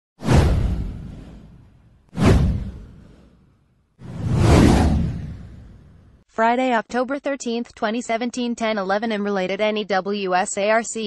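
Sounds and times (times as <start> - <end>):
whoosh sound effects: 0.2 - 6.2.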